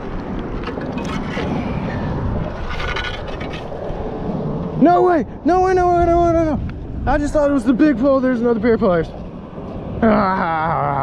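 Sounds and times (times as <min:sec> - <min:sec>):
low rumble: 0:00.0 - 0:11.0
magnet scraping against concrete: 0:02.6 - 0:03.8.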